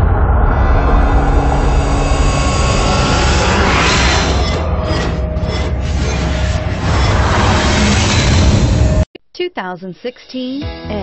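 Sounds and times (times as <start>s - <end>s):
rising whoosh: 0.0s - 9.0s
dense rumble: 0.0s - 9.1s.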